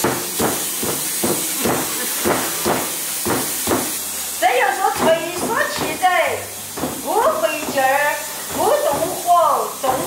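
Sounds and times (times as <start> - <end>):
knocks on wooden board: 0.0 - 3.9
steady hiss: 0.0 - 10.0.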